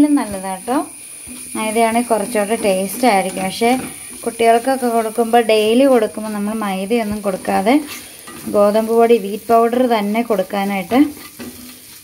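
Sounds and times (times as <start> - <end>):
food being stirred in a pan: 0.0 - 12.0
food sizzling: 0.0 - 12.0.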